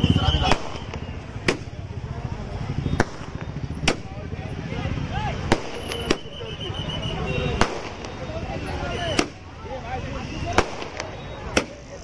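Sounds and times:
firecrackers bursting: 0:00.0 - 0:04.4, 0:05.3 - 0:12.0
crowd chatter: 0:00.0 - 0:12.0.

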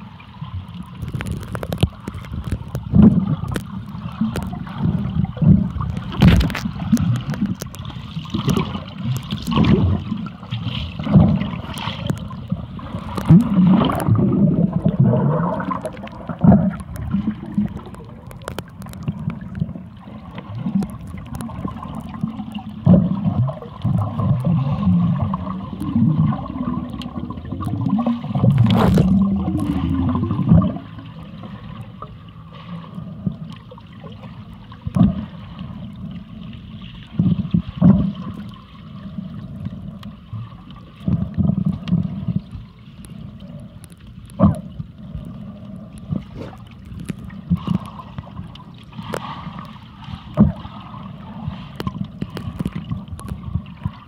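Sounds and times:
muffled underwater rushing water: 0:00.0 - 0:54.0.

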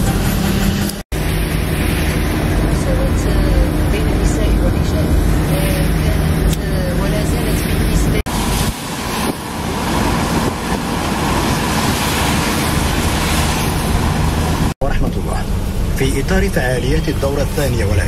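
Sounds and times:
car engine and tyre rumble: 0:00.0 - 0:18.0.

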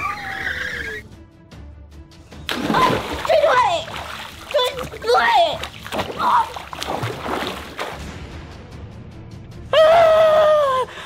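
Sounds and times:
background music: 0:00.0 - 0:11.0
water splashing in pool: 0:02.5 - 0:08.1
child shouting for help: 0:02.8 - 0:06.6.

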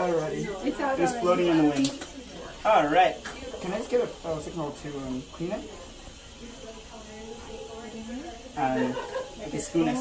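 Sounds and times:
dental equipment hissing: 0:00.0 - 0:10.0
faint voices: 0:00.0 - 0:10.0.

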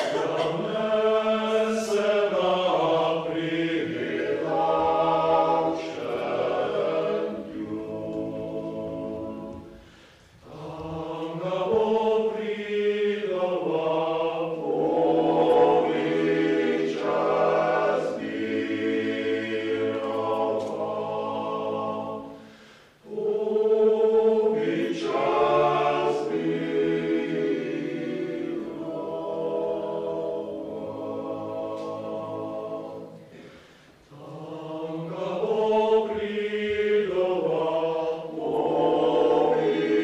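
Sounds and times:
male-voice choir singing: 0:00.0 - 0:40.0.

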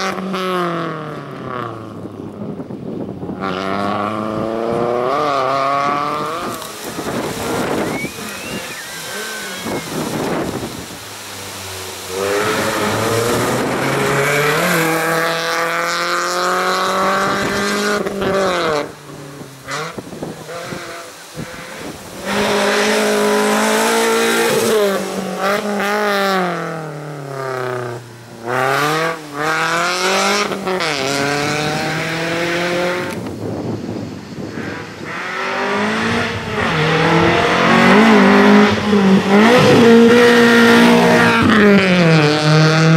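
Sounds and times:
race car engine revving: 0:03.4 - 0:33.6, 0:34.4 - 0:42.9.

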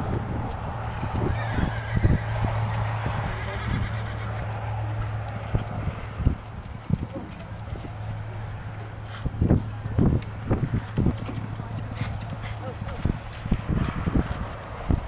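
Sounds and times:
horse hoofbeats on dirt: 0:00.0 - 0:15.0
steady low hum: 0:00.0 - 0:15.0.

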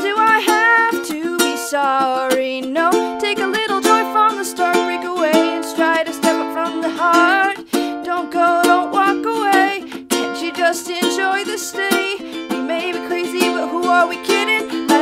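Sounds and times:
ukulele strumming: 0:00.0 - 0:15.0
woman singing: 0:00.0 - 0:15.0.

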